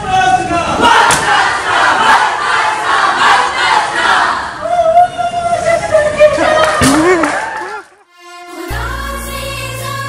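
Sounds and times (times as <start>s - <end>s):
crowd shouting and cheering: 0.0s - 8.1s.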